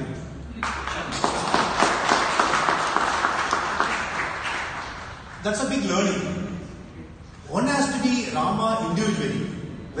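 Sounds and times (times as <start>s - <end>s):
audience applauding: 0.6s - 5.5s.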